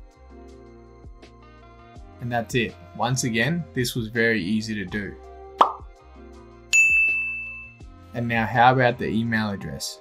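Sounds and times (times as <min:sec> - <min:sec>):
soft background music: 0:00.0 - 0:10.0
bright chime ding: 0:06.7 - 0:07.8.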